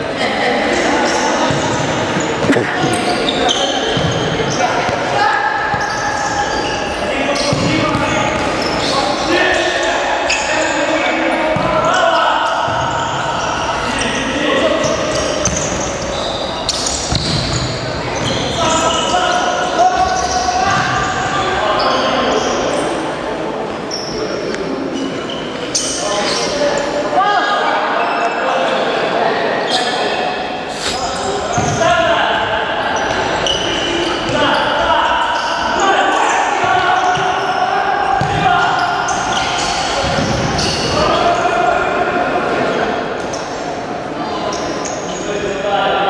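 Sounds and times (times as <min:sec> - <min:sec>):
shoes squeaking on court: 0:01.0 - 0:04.4.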